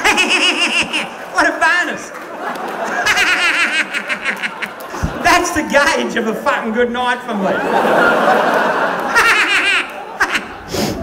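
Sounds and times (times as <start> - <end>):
person laughing: 0.0 - 1.4, 2.8 - 5.6, 9.0 - 11.0.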